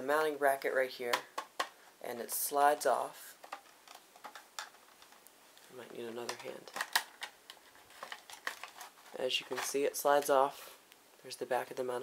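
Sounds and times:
plastic clicks and scrapes: 0:03.4 - 0:05.3, 0:06.2 - 0:09.8.

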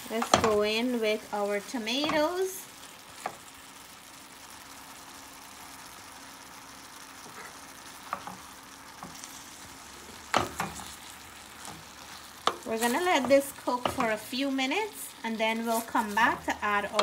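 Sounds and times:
vegetables sizzling in a pot: 0:00.0 - 0:17.0.

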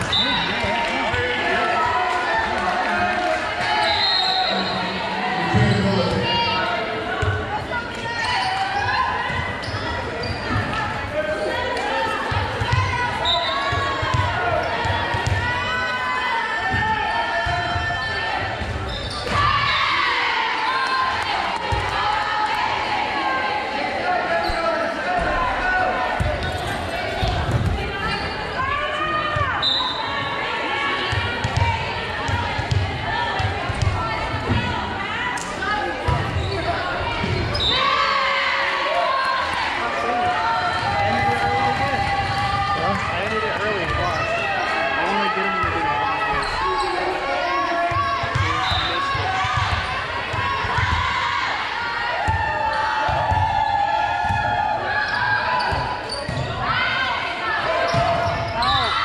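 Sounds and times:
players and spectators calling out: 0:00.0 - 0:59.0.

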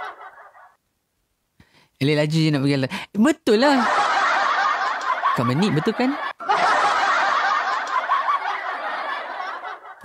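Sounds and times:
dense continuous laughter: 0:00.0 - 0:00.8, 0:03.8 - 0:10.0.

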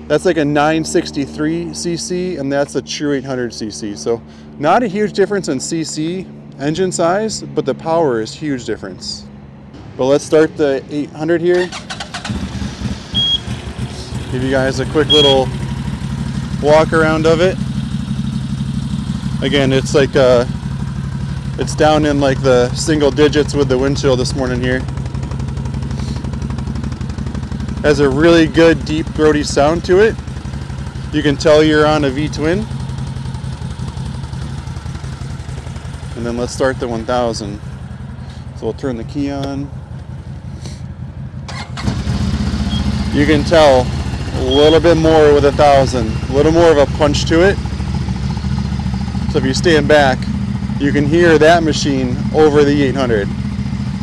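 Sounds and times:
engine starting and rumbling: 0:00.0 - 0:54.0
engine idling: 0:10.6 - 0:54.0
engine starting and idling: 0:11.5 - 0:15.7, 0:41.4 - 0:47.1
short high beep: 0:13.1 - 0:13.6, 0:15.0 - 0:15.4.

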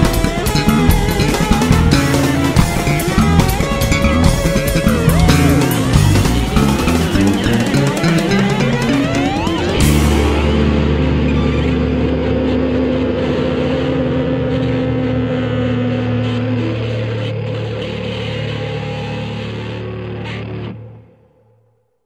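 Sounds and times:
electric bass chord ringing: 0:00.0 - 0:17.4.

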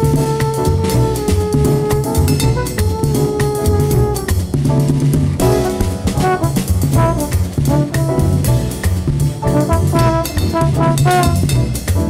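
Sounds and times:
trombone: 0:00.0 - 0:04.8, 0:05.4 - 0:12.0
bass and drums: 0:00.0 - 0:12.0
jazz brass horns playing: 0:00.0 - 0:12.0.

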